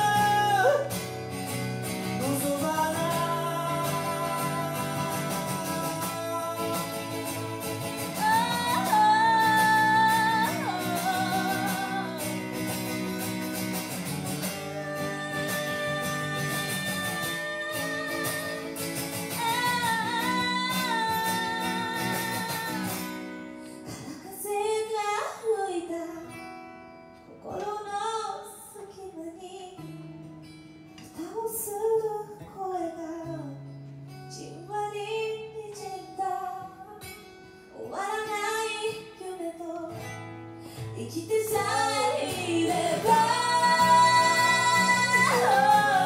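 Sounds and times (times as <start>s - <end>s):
woman singing a slow ballad: 0.0s - 1.0s, 2.2s - 13.6s, 14.3s - 26.5s, 27.3s - 29.9s, 31.1s - 40.2s, 40.8s - 46.0s
strummed acoustic guitar: 0.0s - 24.9s, 25.8s - 27.8s, 29.8s - 46.0s.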